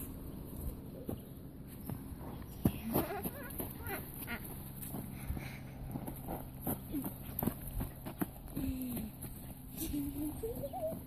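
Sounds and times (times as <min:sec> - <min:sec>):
puppies whining and yipping: 0:10.4 - 0:11.0.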